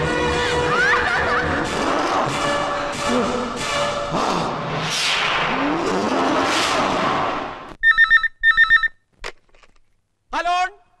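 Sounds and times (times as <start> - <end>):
desk telephone ringing: 7.8 - 9.0.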